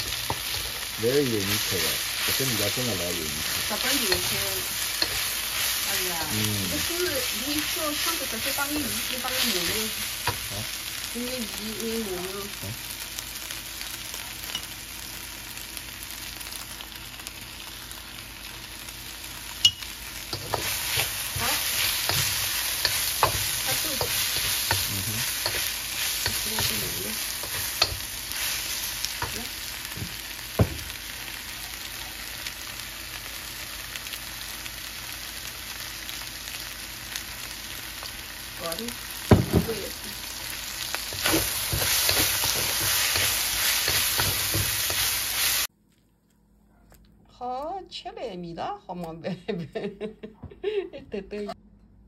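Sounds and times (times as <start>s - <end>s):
spatula stirring and scraping: 0.0s - 6.2s, 20.2s - 30.2s, 41.0s - 45.7s
food sizzling in a wok: 0.0s - 45.7s.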